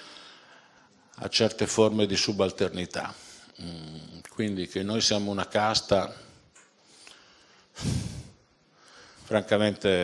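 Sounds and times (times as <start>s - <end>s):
man speaking: 1.2s - 6.4s, 9.3s - 10.0s
man breathing into microphone: 6.8s - 9.3s.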